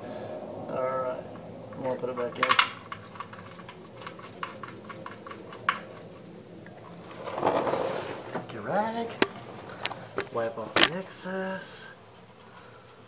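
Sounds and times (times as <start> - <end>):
rustle: 0.0 - 13.0.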